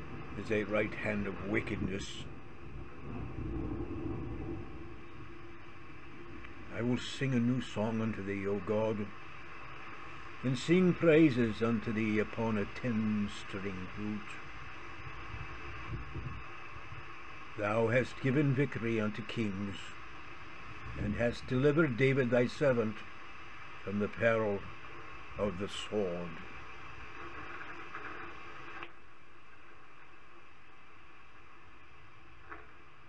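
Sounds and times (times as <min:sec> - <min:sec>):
low hum: 0:00.0 - 0:33.0
steady hiss: 0:00.0 - 0:33.0
faint ticks: 0:02.9 - 0:06.7, 0:26.3 - 0:30.5, 0:32.2 - 0:33.0.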